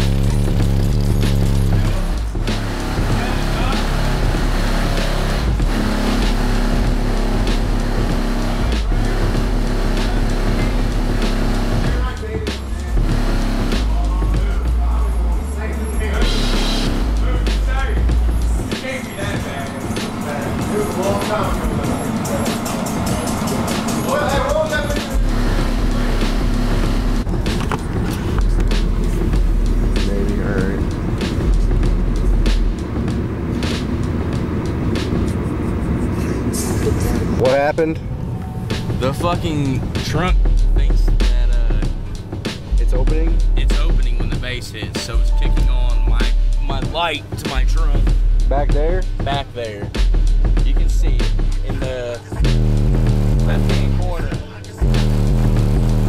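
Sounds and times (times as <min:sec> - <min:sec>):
bass-heavy music through subwoofer: 0:00.0 - 0:38.0, 0:38.8 - 0:56.0.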